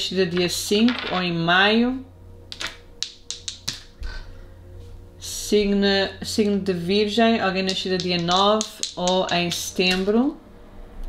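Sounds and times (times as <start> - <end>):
cards tapping on table: 2.6 - 3.9.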